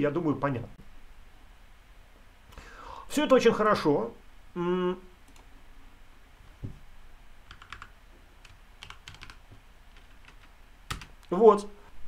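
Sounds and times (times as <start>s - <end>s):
soft low thump: 6.5s - 6.9s
keyboard typing: 7.5s - 11.3s.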